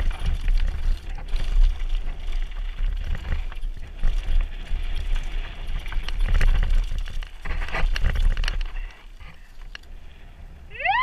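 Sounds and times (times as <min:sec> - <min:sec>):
bike rolling on gravel: 0:00.0 - 0:10.7
person whooping: 0:10.7 - 0:11.0.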